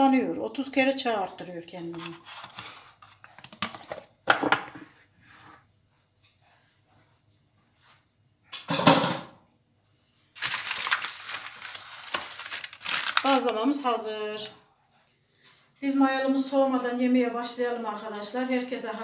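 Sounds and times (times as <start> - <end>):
baking paper rustling: 1.4 - 4.0, 10.3 - 14.5
cookware and cutlery clattering: 8.5 - 9.4.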